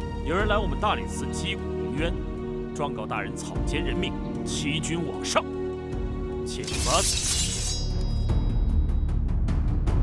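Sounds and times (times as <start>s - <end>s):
dramatic music with drumming: 3.3s - 10.0s
sabres drawn metallic ring: 6.5s - 8.7s.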